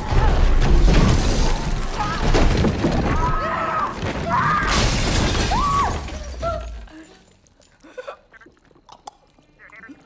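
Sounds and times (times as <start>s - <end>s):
glass shattering: 4.0s - 7.5s.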